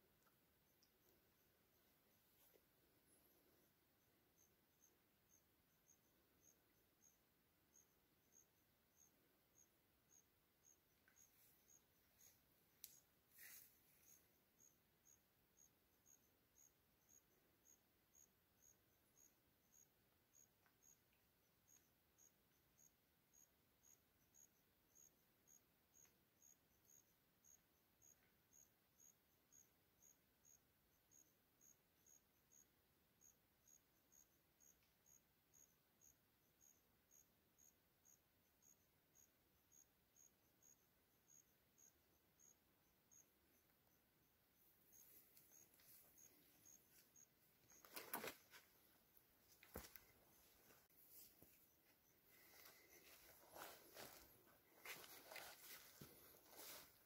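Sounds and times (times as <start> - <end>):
insect chirping: 0.0 - 57.0.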